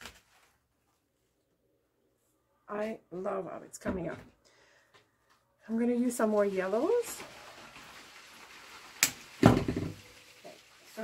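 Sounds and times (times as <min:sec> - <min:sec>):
knock on wicker basket: 0:09.4 - 0:10.0
flower stems rustling: 0:10.0 - 0:11.0.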